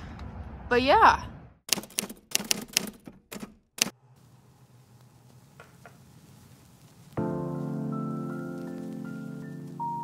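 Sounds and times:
sharp clicks: 1.7 - 4.0.

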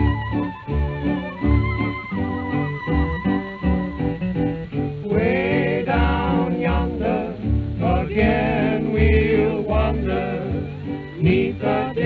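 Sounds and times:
fiddle playing tune: 0.0 - 12.0
plucked string bass: 0.0 - 12.0
strummed guitars: 0.0 - 12.0
wavering melody: 0.0 - 12.0.

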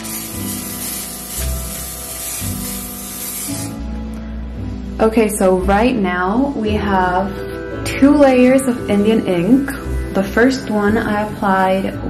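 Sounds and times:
aerosol can hissing: 0.0 - 3.8
background music: 0.0 - 12.0.

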